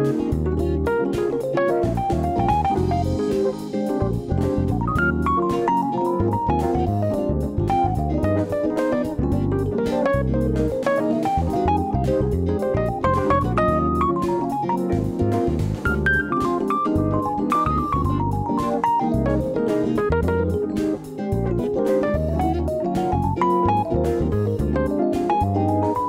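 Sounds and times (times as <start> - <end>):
bass: 0.0 - 26.0
guitar melody: 0.0 - 26.0
steady beat: 0.0 - 26.0.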